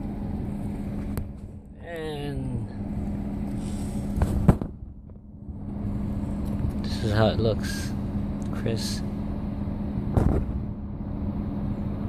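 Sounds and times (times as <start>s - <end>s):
constant low hum: 0.0s - 12.0s
low background rumble: 0.0s - 12.0s.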